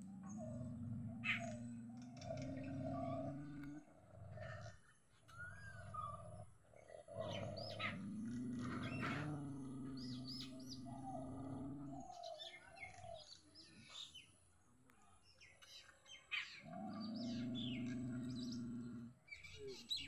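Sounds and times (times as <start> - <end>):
dog growling low: 0.0 - 14.1, 16.6 - 20.0
small birds chirping: 0.0 - 20.0.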